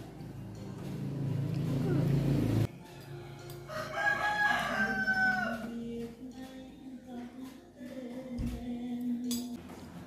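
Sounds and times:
rooster crowing: 0:03.2 - 0:05.8.

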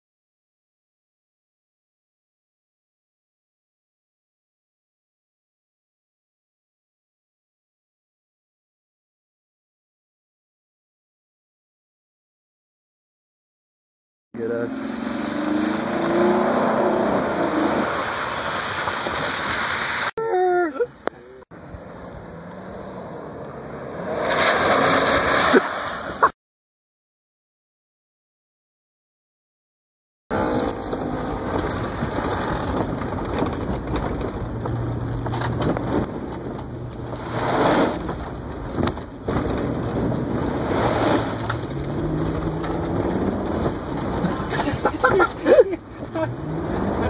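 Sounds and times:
truck engine accelerating: 0:14.4 - 0:20.1, 0:21.1 - 0:26.3, 0:30.3 - 0:47.0.

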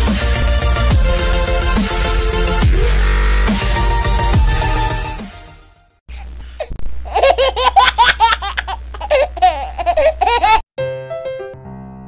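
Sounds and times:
baby laughing: 0:07.0 - 0:10.6.

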